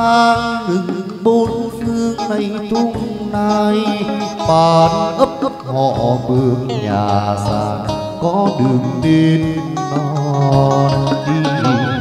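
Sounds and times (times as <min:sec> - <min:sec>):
plucked lute: 0:00.0 - 0:12.0
chant-like singing: 0:00.2 - 0:12.0.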